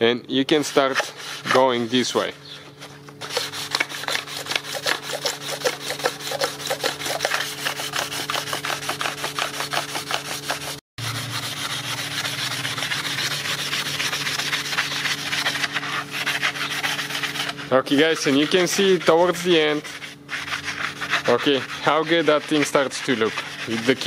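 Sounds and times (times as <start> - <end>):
sandpaper rasping on metal: 0.4 - 24.0.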